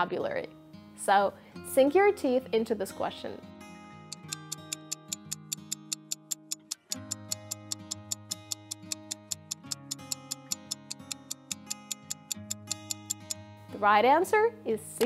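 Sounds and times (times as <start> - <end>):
soft background music: 0.0 - 15.0
clock ticking: 4.1 - 13.4.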